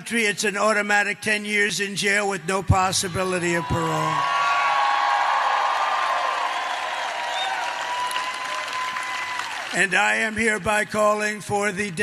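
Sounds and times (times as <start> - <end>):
crowd cheering and applauding: 3.4 - 10.4.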